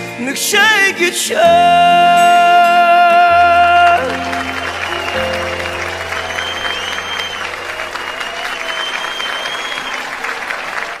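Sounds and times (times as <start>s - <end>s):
held notes of backing music: 0.0s - 8.6s
studio audience applauding: 3.1s - 11.0s.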